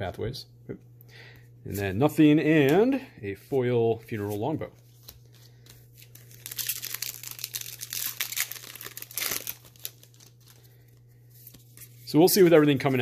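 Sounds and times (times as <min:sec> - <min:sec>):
plastic wrapper crinkling: 0:05.8 - 0:10.8
plastic wrapper tearing: 0:06.0 - 0:10.6.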